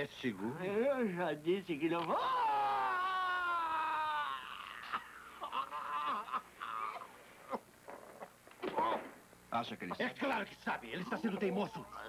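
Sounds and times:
man screaming in pain: 0:02.1 - 0:07.0
man moaning: 0:02.2 - 0:07.1.

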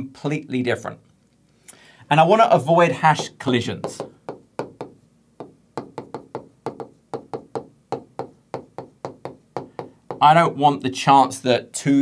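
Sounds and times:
stylus tapping on touchscreen glass: 0:03.2 - 0:10.3.

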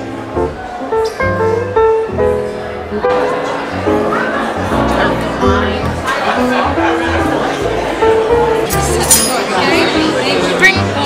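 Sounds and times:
background music: 0:00.0 - 0:11.0
murmur of diners chatter: 0:00.0 - 0:11.0
tableware clinking: 0:08.6 - 0:09.9.

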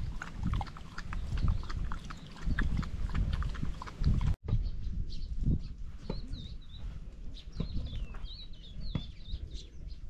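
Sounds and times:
dog lapping: 0:00.0 - 0:04.4.

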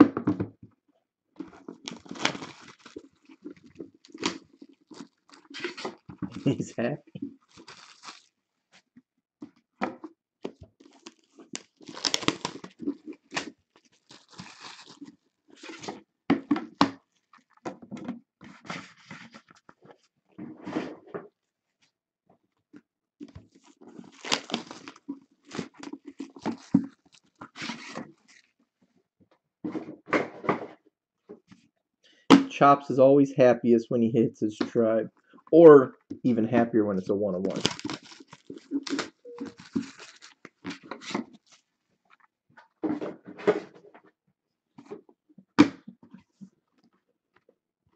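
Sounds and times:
plastic wrapping crinkling: 0:01.4 - 0:08.5, 0:10.7 - 0:16.0, 0:17.0 - 0:17.7, 0:23.5 - 0:28.6, 0:37.5 - 0:41.8.

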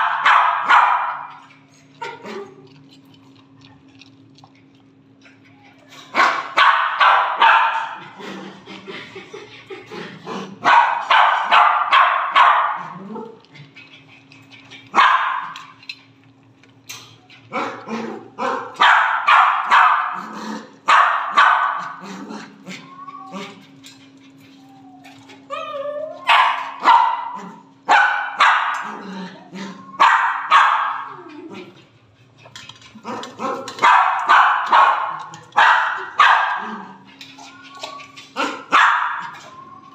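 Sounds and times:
dog barking: 0:00.0 - 0:01.4, 0:06.1 - 0:08.0, 0:10.6 - 0:12.9, 0:15.0 - 0:15.6, 0:18.4 - 0:20.2, 0:20.9 - 0:22.0, 0:26.3 - 0:28.9, 0:30.0 - 0:31.1, 0:33.4 - 0:36.7, 0:38.4 - 0:39.4
dog whining: 0:05.2 - 0:06.1, 0:22.6 - 0:26.8, 0:29.0 - 0:30.3, 0:30.9 - 0:31.8, 0:36.0 - 0:39.9.

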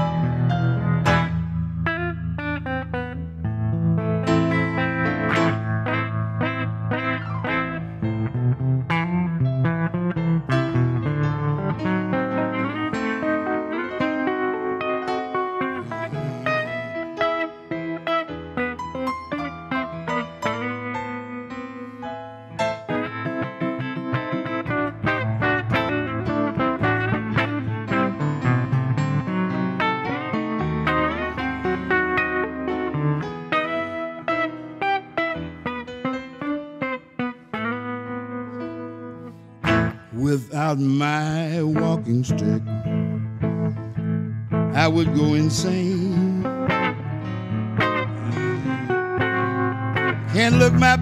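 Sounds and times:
low keyboard chords: 0:00.0 - 0:51.0
picked guitar notes: 0:00.0 - 0:51.0.

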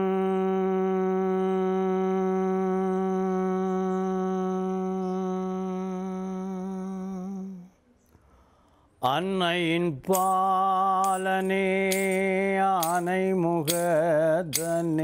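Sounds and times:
man humming a held note: 0:00.0 - 0:07.8.

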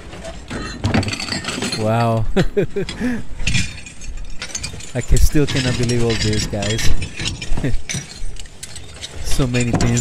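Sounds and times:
person laughing: 0:02.2 - 0:03.4, 0:07.6 - 0:07.9
ceramic and cutlery clinking: 0:02.9 - 0:10.0.

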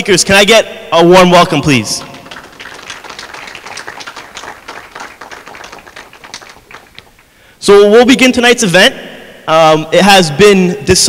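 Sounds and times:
audience applauding: 0:02.0 - 0:07.3.

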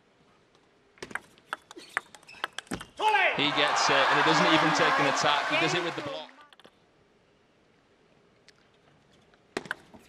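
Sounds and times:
table tennis ball clicking: 0:01.0 - 0:02.9.

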